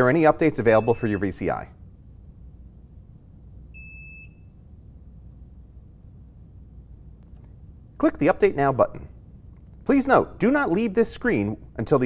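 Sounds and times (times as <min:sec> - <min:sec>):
faint low hum: 0:00.0 - 0:12.0
short electronic beep: 0:00.7 - 0:01.4, 0:03.8 - 0:04.6.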